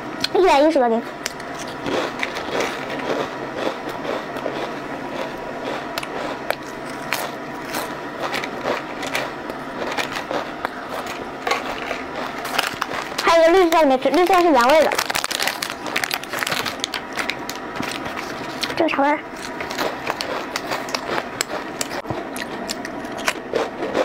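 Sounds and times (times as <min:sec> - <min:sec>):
potato chips crunching: 0:01.2 - 0:24.0.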